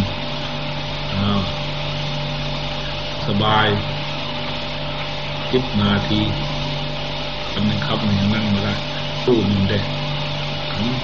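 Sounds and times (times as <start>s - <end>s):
recording hum and hiss: 0.0s - 11.0s.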